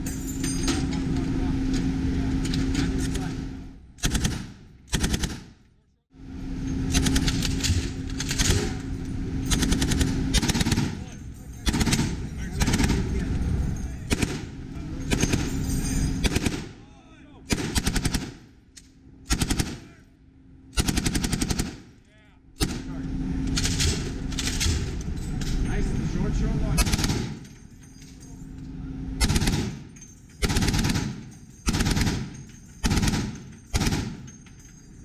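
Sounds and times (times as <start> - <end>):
machine gun bursts: 4.0 - 5.5, 6.9 - 8.8, 9.5 - 11.0, 11.6 - 13.2, 14.1 - 14.5, 16.2 - 16.7, 17.5 - 18.4, 19.3 - 19.9, 20.8 - 21.8, 26.8 - 27.4, 29.2 - 29.8, 30.4 - 34.4.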